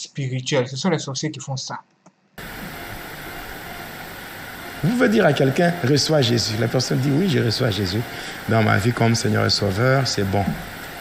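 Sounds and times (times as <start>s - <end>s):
steady background hiss: 2.4s - 11.0s
man speaking: 4.8s - 10.6s.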